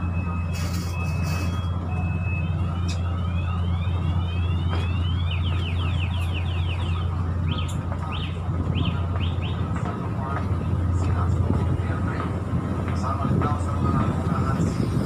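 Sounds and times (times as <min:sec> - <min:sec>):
ship machinery drone: 0:00.0 - 0:15.0.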